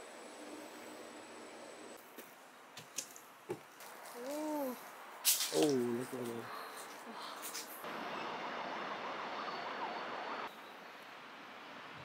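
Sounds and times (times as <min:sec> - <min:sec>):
open-air ambience: 0:00.0 - 0:12.0.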